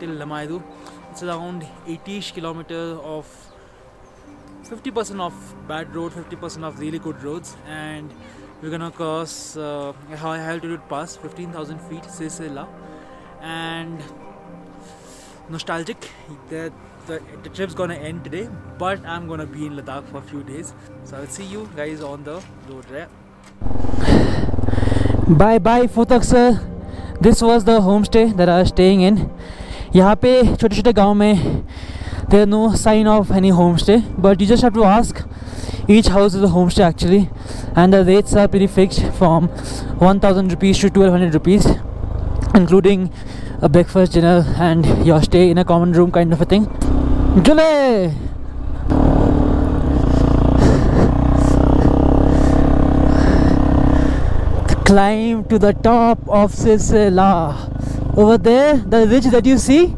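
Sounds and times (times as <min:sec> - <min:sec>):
motorcycle engine running: 0:23.6 - 0:25.7, 0:31.9 - 0:44.8, 0:46.4 - 0:59.9.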